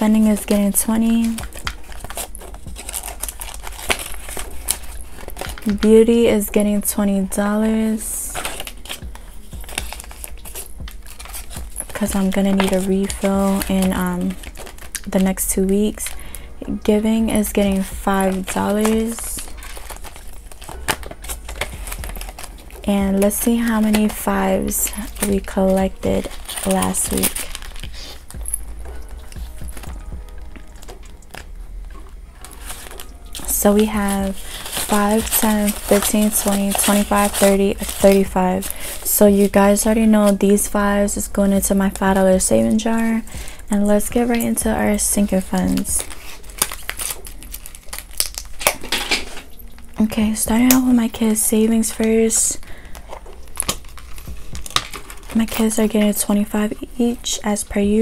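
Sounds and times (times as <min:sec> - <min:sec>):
paper and plastic crinkling: 0:00.0 - 0:58.0.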